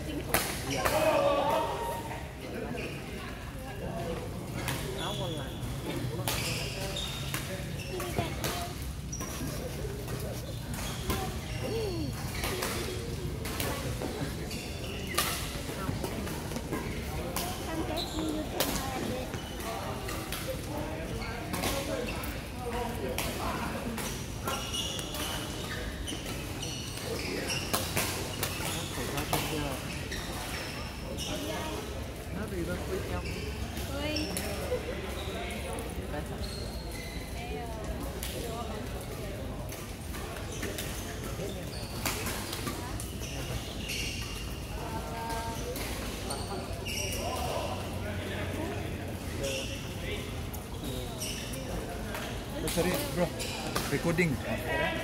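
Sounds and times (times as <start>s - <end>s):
distant players chatting: 0.0s - 24.7s
shoe squeaks: 4.6s - 16.0s, 17.4s - 20.0s, 24.4s - 31.9s, 32.9s - 37.6s, 40.4s - 44.7s, 45.3s - 47.8s, 49.4s - 54.3s.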